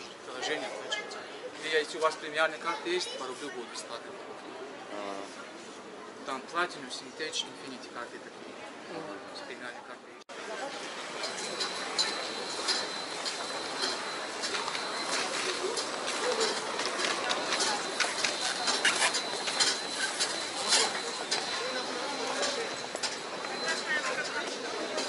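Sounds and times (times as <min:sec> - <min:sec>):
distant voices: 0:10.3 - 0:25.0.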